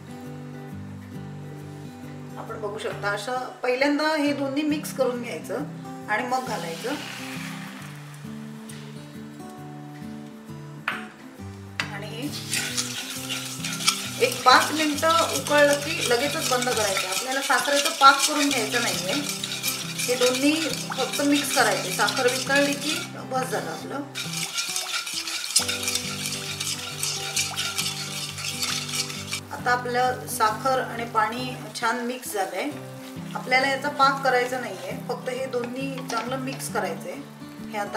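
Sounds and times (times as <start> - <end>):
slow background music: 0.0 - 37.9
spatula scraping sugar: 12.3 - 29.5
spatula knocking metal pan: 12.4 - 23.1, 24.2 - 29.4.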